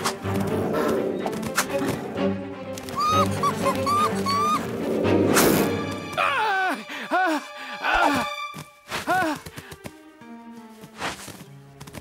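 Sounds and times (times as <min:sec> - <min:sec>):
background music: 0:00.0 - 0:12.0
high yelping calls: 0:02.9 - 0:04.7.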